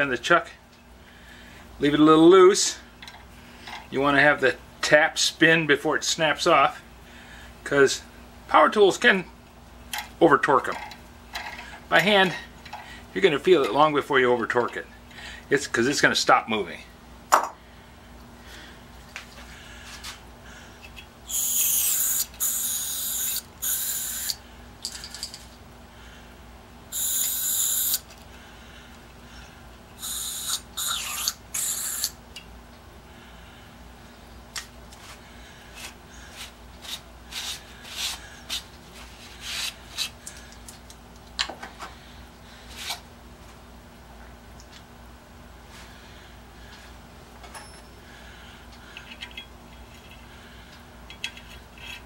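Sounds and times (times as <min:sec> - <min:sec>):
aerosol can spraying: 0:21.3 - 0:24.4, 0:26.9 - 0:28.0, 0:30.0 - 0:32.1.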